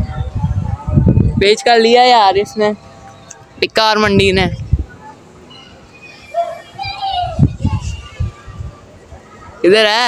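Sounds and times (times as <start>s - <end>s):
children calling out and playing: 3.6s - 10.0s.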